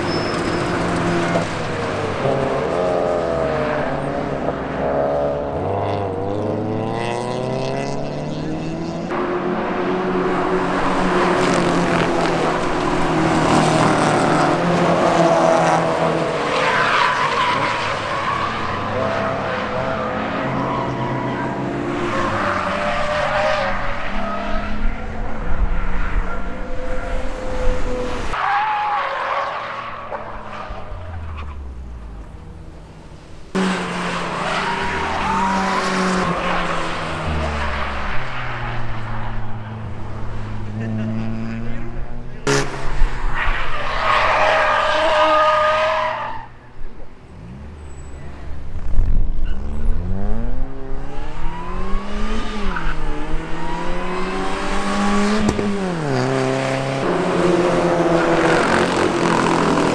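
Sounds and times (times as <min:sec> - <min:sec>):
tyre squeal: 0:00.0 - 0:02.7, 0:47.8 - 0:48.3
race car engines revving: 0:00.0 - 0:59.9.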